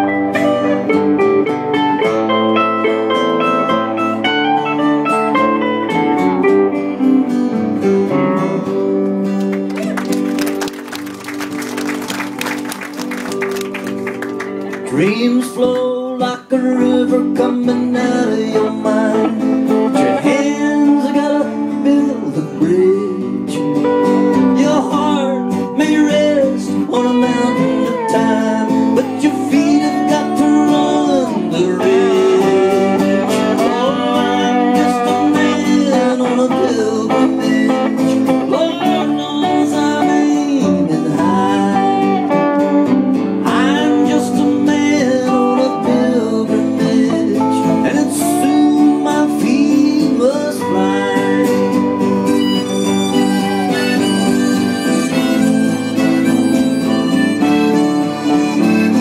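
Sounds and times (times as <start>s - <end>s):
acoustic guitar strumming: 0.0s - 59.0s
mandolin picking lead line: 0.0s - 59.0s.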